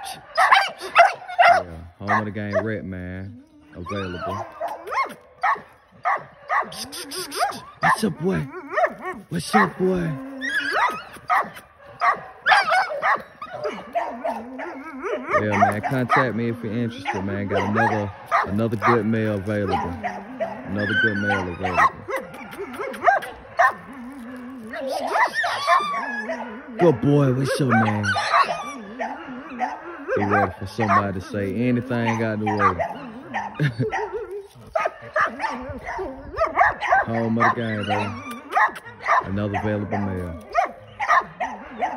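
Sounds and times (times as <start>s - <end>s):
dog yipping and whining: 0.0s - 41.9s.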